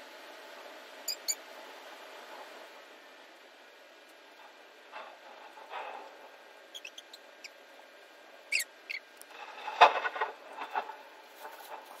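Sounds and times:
faint outdoor hiss: 0:00.0 - 0:12.0
bird chirping: 0:01.1 - 0:01.4, 0:06.7 - 0:07.6.

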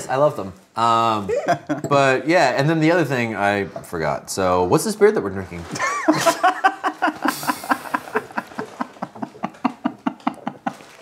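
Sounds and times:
fizzy hiss: 0:05.7 - 0:09.2.

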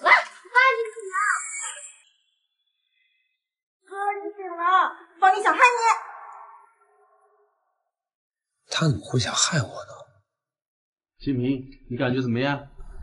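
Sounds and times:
high-pitched wordless vocal sounds: 0:00.0 - 0:02.0, 0:03.9 - 0:06.6.

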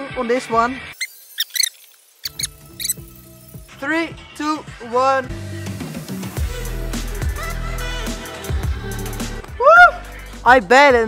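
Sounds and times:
background music: 0:00.0 - 0:01.0, 0:02.2 - 0:11.0
high-pitched squeaks: 0:01.0 - 0:03.1.

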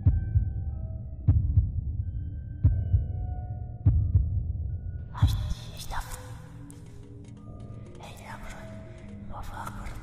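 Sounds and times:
heartbeat-like low thumps: 0:00.0 - 0:05.7.

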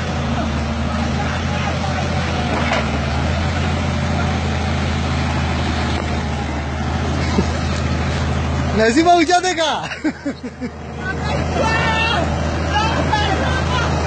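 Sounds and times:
diesel engine running: 0:00.0 - 0:14.0.

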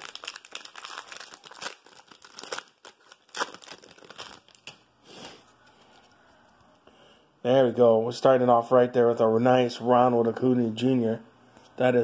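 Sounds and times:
wrapper tearing and crinkling: 0:00.0 - 0:04.8.

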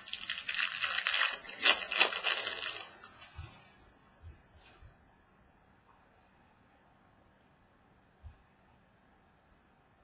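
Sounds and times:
card pack wrapper tearing and crinkling: 0:00.0 - 0:03.2.

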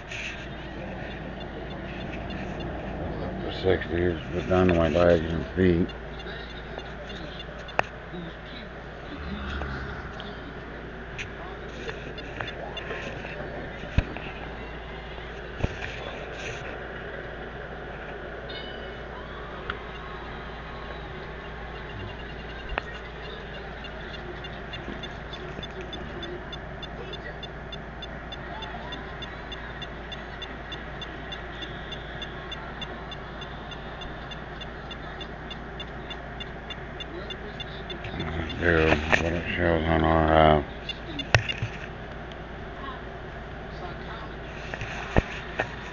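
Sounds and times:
emf meter beeping: 0:00.0 - 0:15.5, 0:21.0 - 0:41.8.

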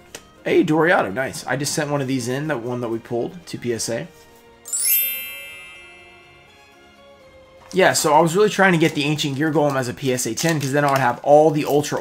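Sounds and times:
bell-like chime: 0:04.7 - 0:07.1.

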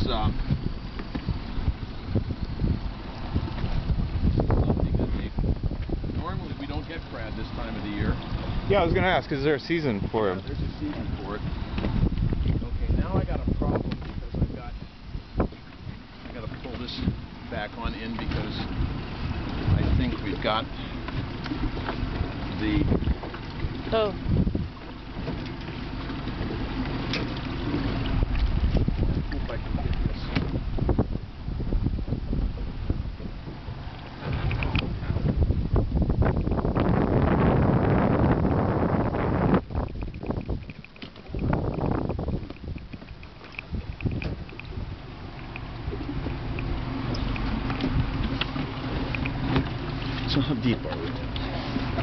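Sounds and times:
wind buffeting microphone: 0:00.0 - 0:52.0
knocks on boat deck: 0:11.7 - 0:12.6.

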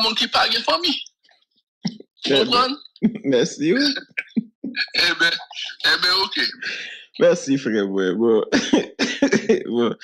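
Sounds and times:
person talking: 0:00.0 - 0:01.1, 0:01.9 - 0:10.0.

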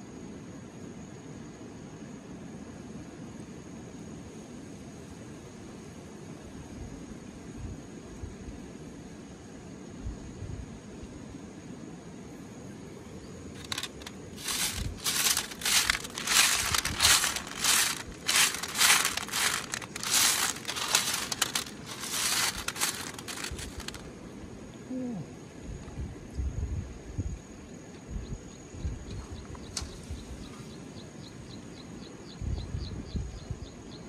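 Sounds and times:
low background rush: 0:13.0 - 0:24.6
pebbles rattling in metal sieve: 0:13.6 - 0:24.0.

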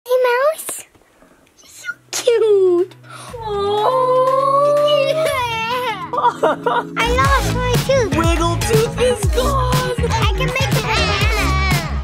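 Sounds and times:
girl's high-pitched vocal sound: 0:09.2 - 0:12.0.

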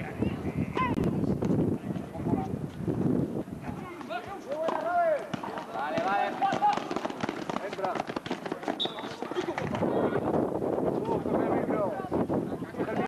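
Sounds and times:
loud shouts: 0:03.6 - 0:07.0
players calling out: 0:03.7 - 0:10.3.

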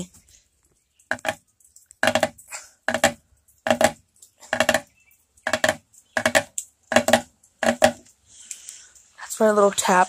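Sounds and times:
fingertips tapping on chair: 0:01.1 - 0:08.1.

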